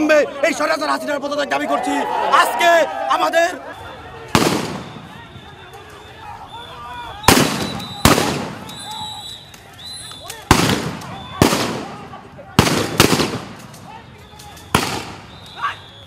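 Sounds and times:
voices shouting: 0.0 - 16.0.

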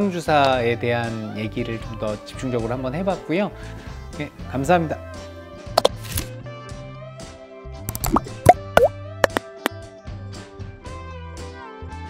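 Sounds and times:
background music: 0.1 - 9.8
cartoon pop and plop effects: 5.8 - 6.0, 7.9 - 9.7.

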